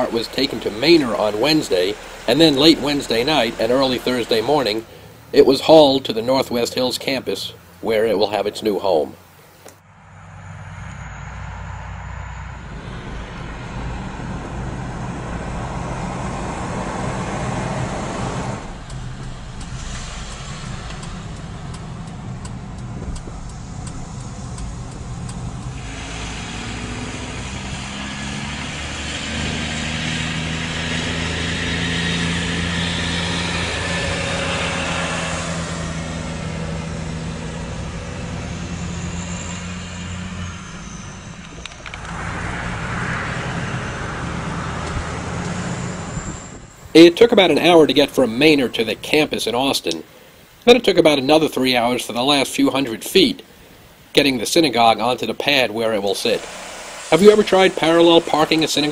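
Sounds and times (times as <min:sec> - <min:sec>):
heavy truck engine running: 0:00.0 - 0:50.6, 0:53.1 - 0:58.9
tyre and road noise: 0:00.0 - 0:58.9.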